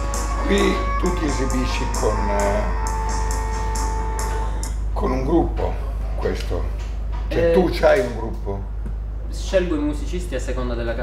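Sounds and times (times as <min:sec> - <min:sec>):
light high percussion beat: 0:00.0 - 0:05.8, 0:06.9 - 0:08.2.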